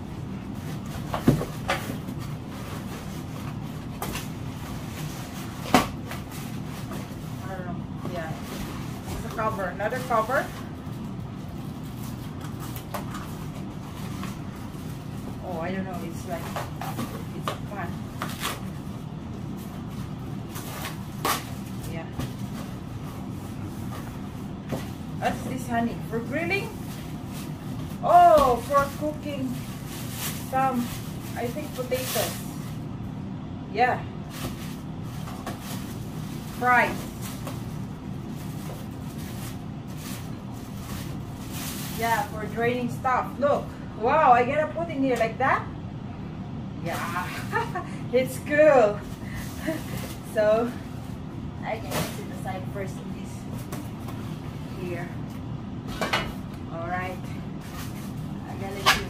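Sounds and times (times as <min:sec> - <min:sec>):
low background hum: 0:00.0 - 0:59.0
packing paper rustling: 0:08.1 - 0:25.4, 0:26.0 - 0:32.9, 0:34.2 - 0:42.6, 0:57.6 - 0:58.4.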